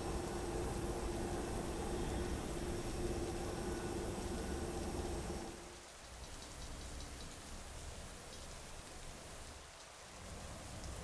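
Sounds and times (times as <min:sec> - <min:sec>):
steady hum with held tones: 0:00.0 - 0:06.0.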